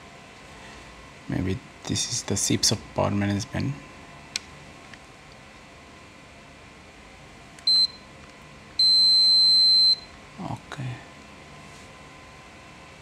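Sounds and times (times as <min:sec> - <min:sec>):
multimeter continuity beeps: 0:07.6 - 0:08.1, 0:08.8 - 0:10.2.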